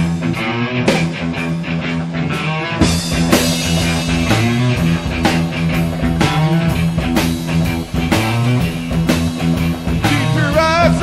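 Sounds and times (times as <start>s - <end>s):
bass guitar: 0.0s - 11.0s
electric guitars: 0.0s - 11.0s
drum hits: 2.8s - 11.0s.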